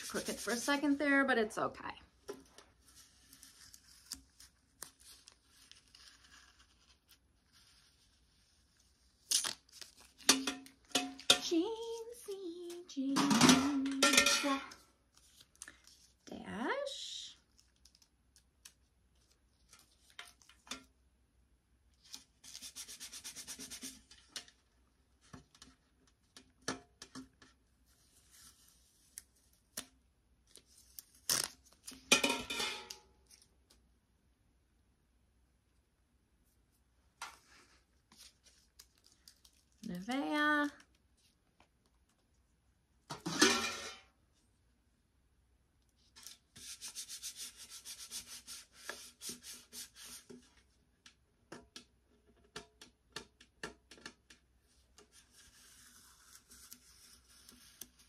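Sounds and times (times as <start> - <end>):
paper crinkling and tearing: 2.8 - 10.3.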